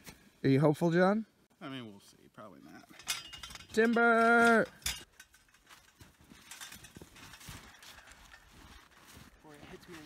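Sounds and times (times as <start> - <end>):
metal ladder knocks and creaks: 2.8 - 9.2.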